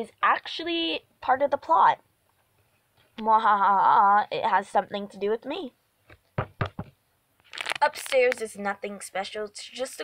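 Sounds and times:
knocks on a hard surface: 6.1s - 7.0s.

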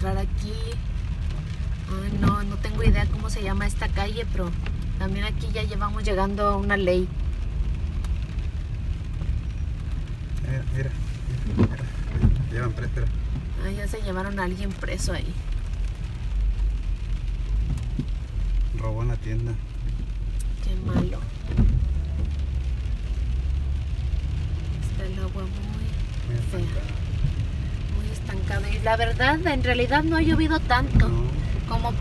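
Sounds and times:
car cabin rumble: 10.5s - 15.6s, 17.5s - 22.9s, 24.6s - 32.0s.

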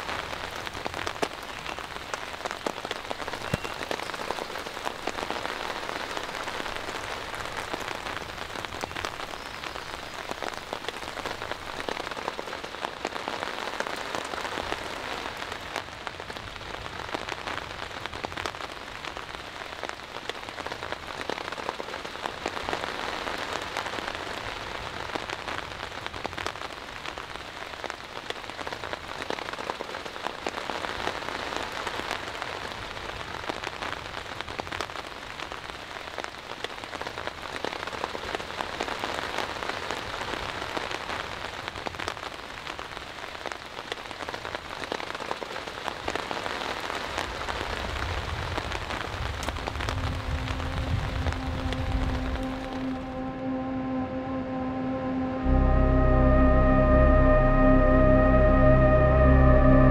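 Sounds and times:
steady rain hiss: 0.0s - 59.9s
raindrops ticking: 47.4s - 53.1s.

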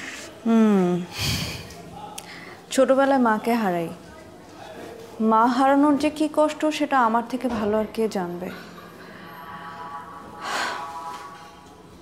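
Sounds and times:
faint background music: 0.0s - 12.0s
person breathing: 1.1s - 2.7s, 10.4s - 11.0s.

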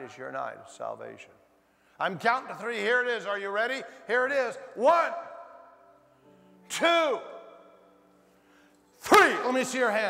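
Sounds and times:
man speaking in echoing hall: 0.0s - 10.0s
soft background music chord: 0.0s - 10.0s.

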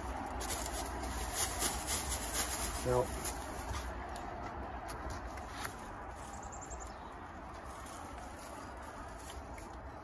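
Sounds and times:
small bird chirping: 6.2s - 7.3s.

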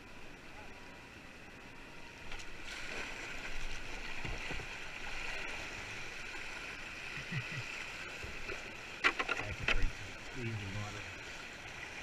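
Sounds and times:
paddle splashes and knocks: 2.2s - 5.5s, 8.2s - 9.9s.

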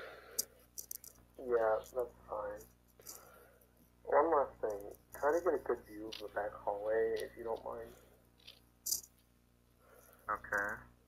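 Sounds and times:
faint hum and hiss: 0.0s - 11.0s.

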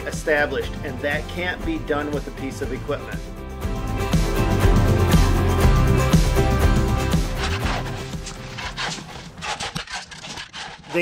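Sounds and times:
background music: 0.0s - 9.6s
shovels scraping through rock: 7.2s - 11.0s.

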